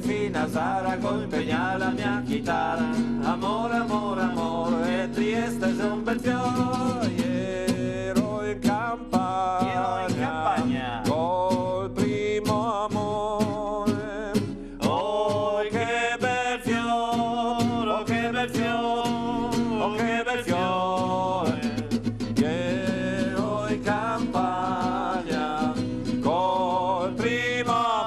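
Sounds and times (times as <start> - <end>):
man singing: 0.0 - 28.0
strummed nylon-string guitar: 0.0 - 28.0.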